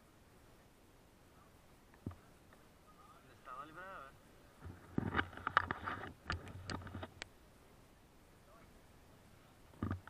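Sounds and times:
close rustling: 4.5s - 7.2s.

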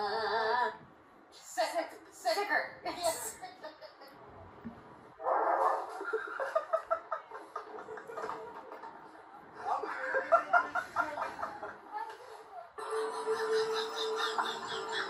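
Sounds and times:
people talking: 1.4s - 4.1s, 6.0s - 15.0s
people laughing: 5.9s - 12.0s, 12.8s - 15.0s.

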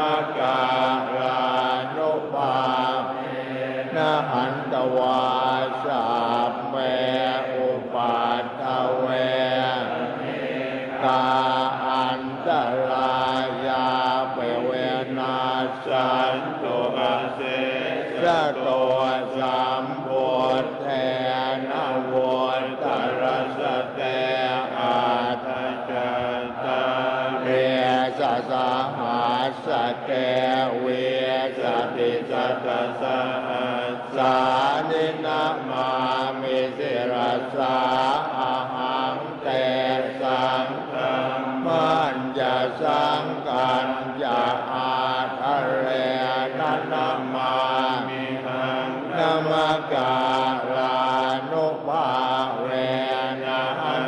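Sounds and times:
monks chanting: 0.0s - 54.0s.

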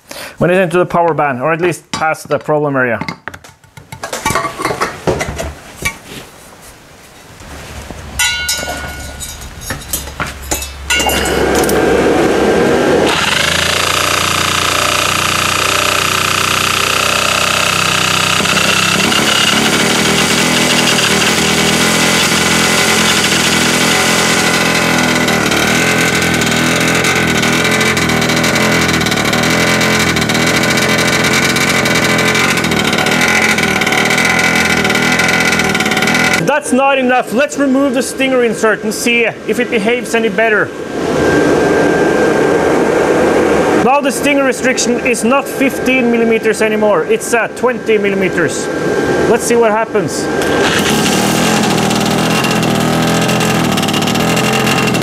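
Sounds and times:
clicks and knocks: 8.2s - 11.8s
two-stroke engine running loudly: 11.1s - 36.4s, 50.4s - 55.0s.

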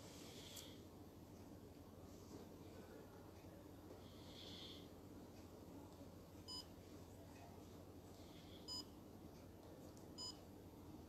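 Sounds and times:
faint room hum: 0.0s - 11.0s.

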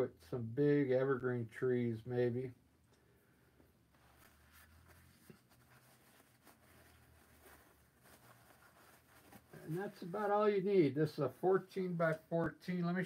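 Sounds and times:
faint scratches and rustles: 3.9s - 12.5s.

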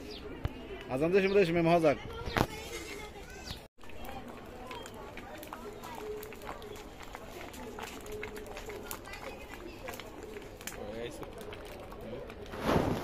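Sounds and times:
people talking in background: 0.0s - 13.0s
wood fire crackling: 2.4s - 13.0s.

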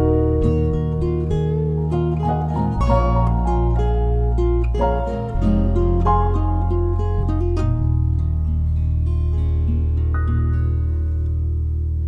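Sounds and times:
piano low bass notes: 0.0s - 12.0s
plucked guitar notes: 0.0s - 12.0s.

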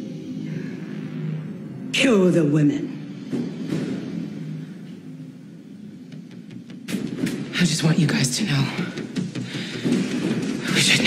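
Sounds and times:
low rumbling drone: 0.0s - 8.2s.

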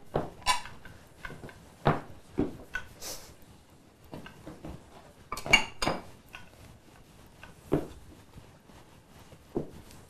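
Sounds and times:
dishes clinking: 0.2s - 3.0s, 5.3s - 6.5s.

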